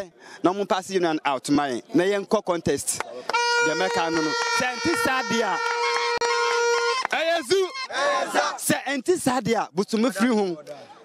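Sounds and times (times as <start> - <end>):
man talking: 0.0 - 5.7, 7.1 - 11.0
voices: 1.0 - 11.0
steady horn note: 3.3 - 8.0.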